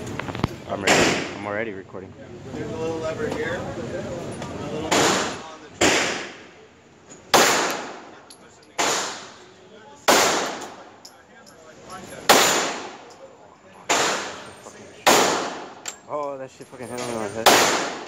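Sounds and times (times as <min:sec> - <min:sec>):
pistol shots with echo: 0:04.9 - 0:06.4, 0:07.3 - 0:08.1, 0:08.8 - 0:09.4, 0:10.0 - 0:10.8, 0:12.3 - 0:13.1, 0:13.9 - 0:14.4, 0:15.0 - 0:15.8, 0:17.4 - 0:18.0.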